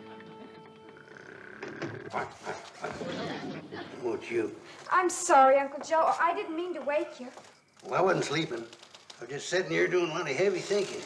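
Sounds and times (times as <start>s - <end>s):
man snoring: 0.9s - 2.2s.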